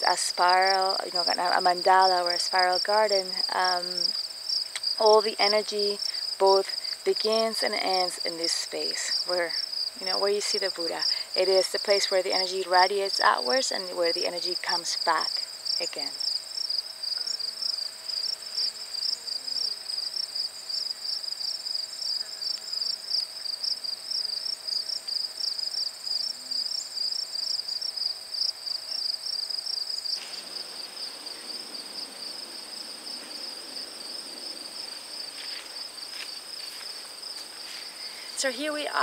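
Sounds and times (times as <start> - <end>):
crickets chirping: 0.0 - 39.0.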